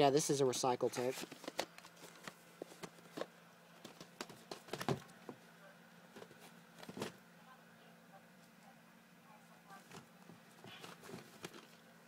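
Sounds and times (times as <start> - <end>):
plastic cassettes clicking: 1.0 - 5.0.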